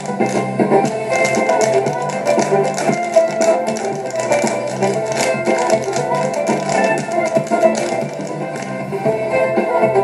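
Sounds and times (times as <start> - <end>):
hard-shoe step dancing clicks: 0.0 - 8.8
irish dance music: 0.0 - 10.0.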